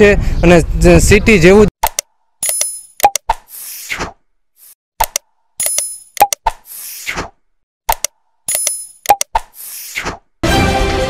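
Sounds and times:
mouse clicks: 1.8 - 3.4, 5.0 - 6.6, 7.9 - 9.5.

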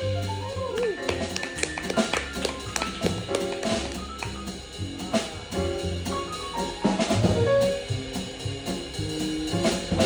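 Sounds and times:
drum and cymbal strikes: 0.0 - 10.0
piano: 0.0 - 10.0
walking double bass line: 0.0 - 10.0.

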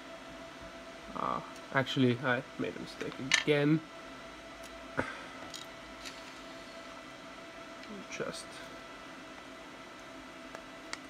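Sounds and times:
faint equipment hum: 0.0 - 11.0.

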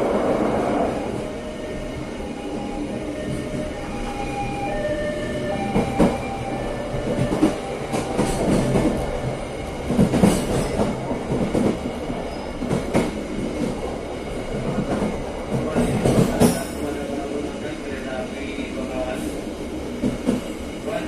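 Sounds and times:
train rumbling on rails: 0.0 - 21.0.

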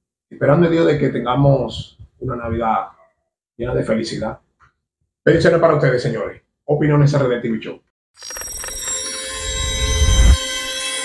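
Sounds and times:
high electronic tones: 8.2 - 11.0.

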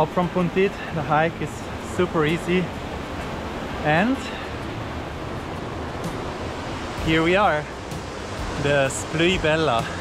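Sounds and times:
creek water rushing over boulders: 0.0 - 10.0.

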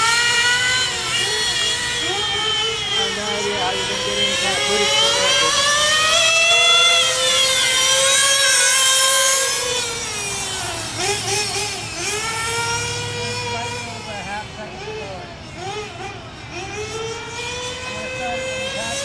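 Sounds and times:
model car engine revving: 0.0 - 19.0.

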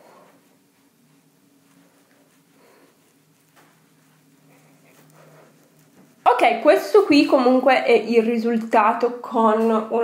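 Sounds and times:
makeup brush brushing skin: 0.0 - 8.1
low steady hum: 0.0 - 10.0.

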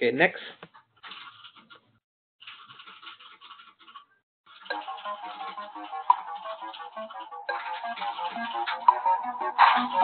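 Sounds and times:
quiz countdown music: 4.7 - 10.0.

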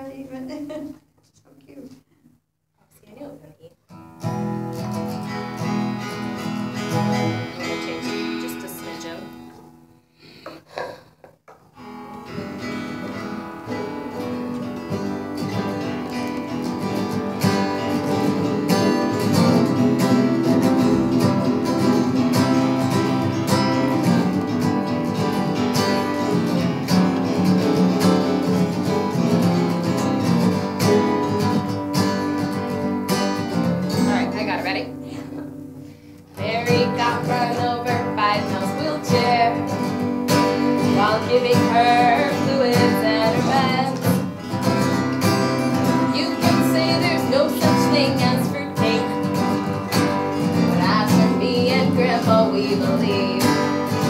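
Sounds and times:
acoustic guitar strumming chords: 3.9 - 11.0, 11.8 - 54.0.

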